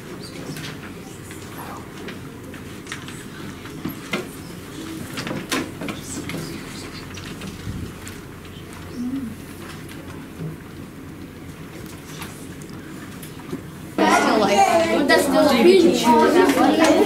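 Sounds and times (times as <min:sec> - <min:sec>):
clicks and knocks at desks: 0:00.0 - 0:08.2
low hiss and hum: 0:00.0 - 0:17.0.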